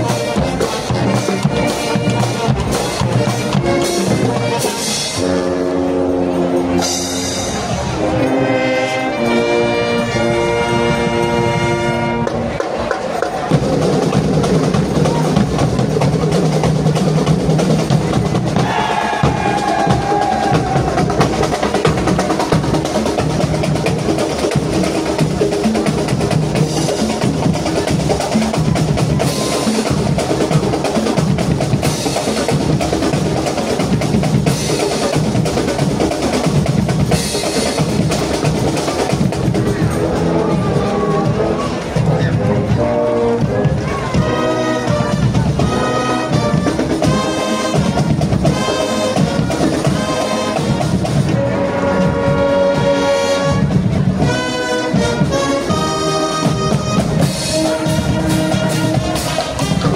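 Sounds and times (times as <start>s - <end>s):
brass band chord: 0.0s - 12.6s, 39.1s - 59.9s
bass drum beats: 12.2s - 59.9s
snare drum rolls: 12.2s - 59.9s.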